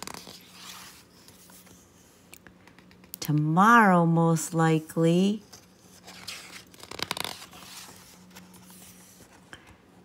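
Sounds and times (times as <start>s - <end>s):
paper page rustling: 0.0s - 2.0s, 5.4s - 9.6s.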